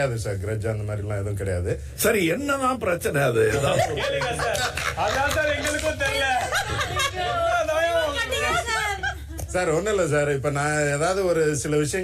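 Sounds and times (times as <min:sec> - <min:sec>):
people laughing: 0:03.5 - 0:09.4.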